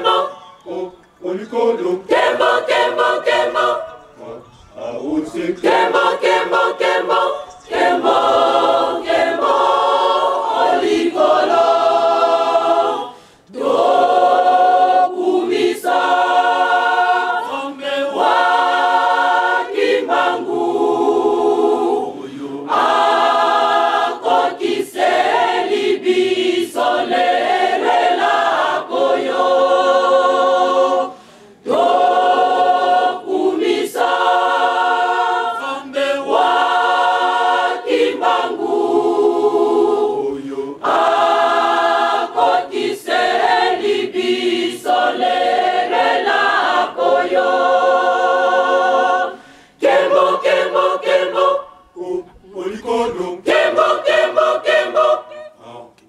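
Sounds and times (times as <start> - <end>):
group singing unaccompanied: 0.0 - 56.0.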